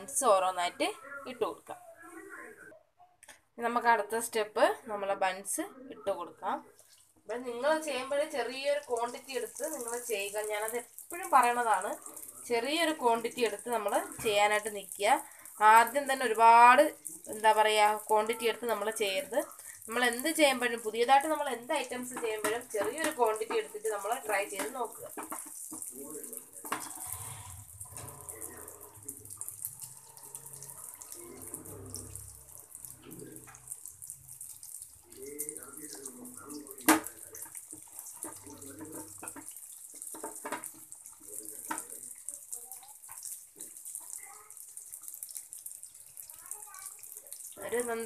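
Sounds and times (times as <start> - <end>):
faint murmur of voices: 0.9 - 3.2
oil sizzling while deep-frying: 4.0 - 48.0.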